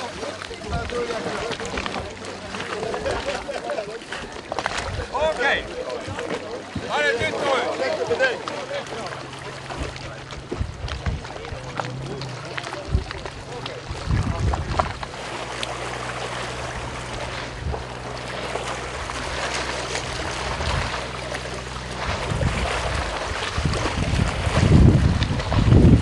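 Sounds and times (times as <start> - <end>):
people talking: 0.0 - 15.2
boat low steady hum: 0.0 - 26.0
wind on microphone: 9.7 - 15.3, 16.5 - 26.0.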